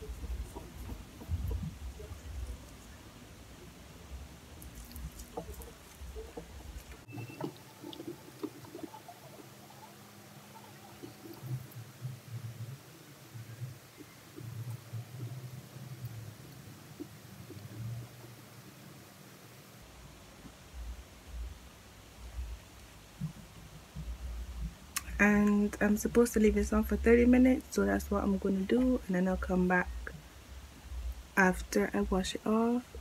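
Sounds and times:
soft low bumps: 0.0 - 9.0, 19.8 - 33.0
fingers rubbing scrub on skin: 4.6 - 7.1.

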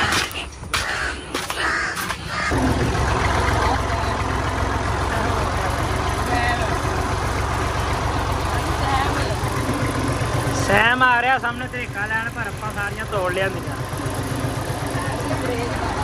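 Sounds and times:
tractor diesel engine idling: 2.4 - 16.0.

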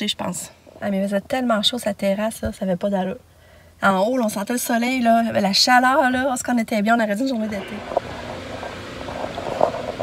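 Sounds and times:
ventilation hum and hiss: 0.0 - 10.0.

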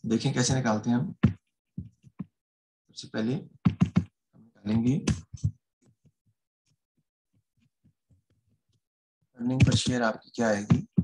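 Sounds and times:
person speaking: 9.4 - 11.0.

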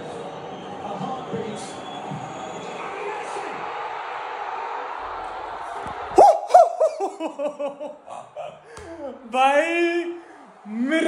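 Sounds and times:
stadium crowd noise: 0.0 - 11.0
man whooping shouts: 6.2 - 7.0.

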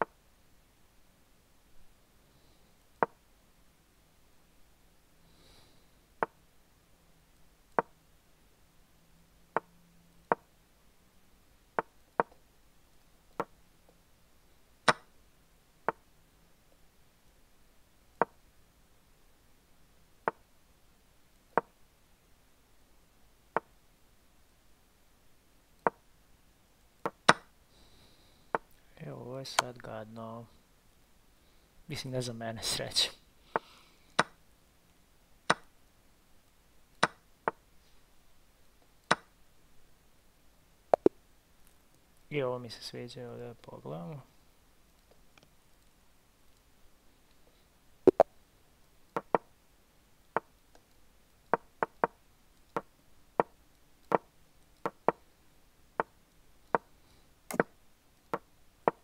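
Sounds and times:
wooden chess move clicks: 10.3 - 10.5, 11.8 - 12.4, 14.9 - 15.1, 21.5 - 21.7, 25.8 - 26.0, 27.0 - 27.5, 33.6 - 34.4, 35.5 - 35.7, 37.0 - 37.6, 39.1 - 39.3, 50.4 - 50.9, 51.5 - 55.2, 57.5 - 57.7.

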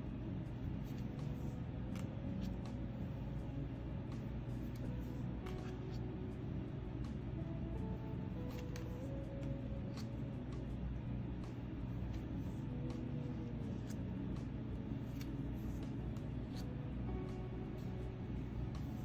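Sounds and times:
soft background music: 0.0 - 19.0
steady low hum: 0.0 - 19.0
cards clicking and sliding: 0.7 - 3.2, 4.2 - 6.0, 8.3 - 9.2, 9.8 - 10.2, 12.0 - 16.8.

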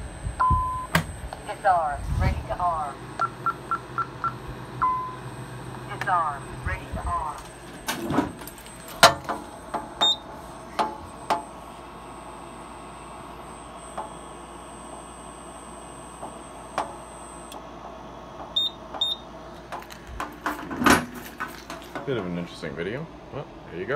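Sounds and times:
faint high whine: 0.0 - 19.6.

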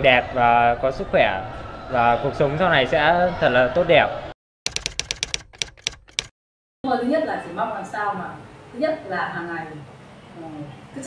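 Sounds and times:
typewriter keystroke clicks: 4.7 - 6.3.

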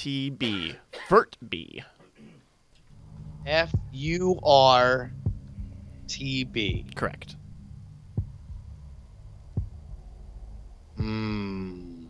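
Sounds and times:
steady low hum: 0.0 - 12.0
soft low thumps: 2.8 - 12.0.

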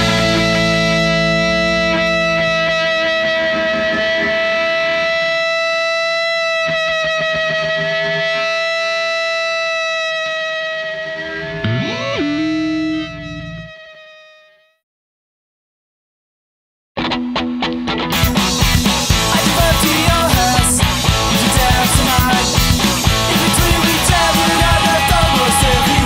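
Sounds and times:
distorted electric guitar chord: 0.0 - 14.7, 17.5 - 26.0.

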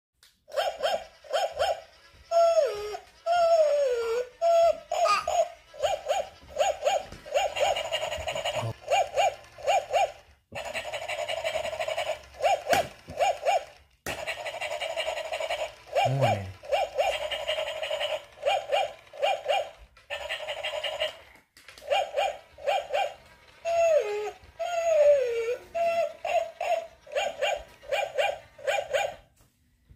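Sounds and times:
toy dog electronic barks: 0.5 - 29.3.

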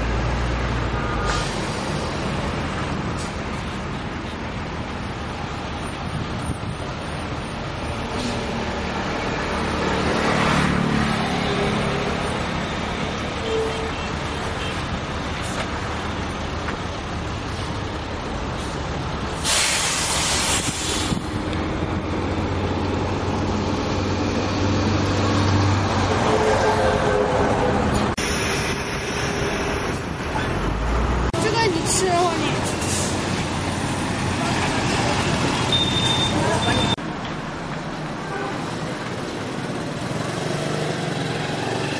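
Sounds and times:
road vehicle noise: 0.0 - 41.9
loud hiss: 19.3 - 21.3.

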